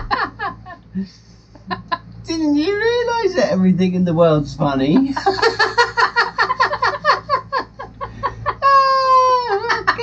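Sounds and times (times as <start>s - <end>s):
man laughing hard: 0.0s - 0.8s, 5.1s - 10.0s.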